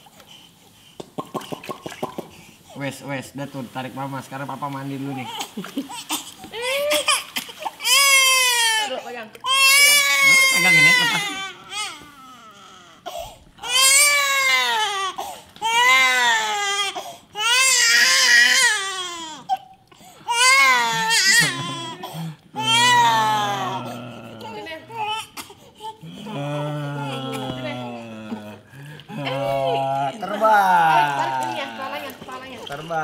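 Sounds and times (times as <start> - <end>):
baby crying: 5.1 - 19.7, 20.3 - 31.9.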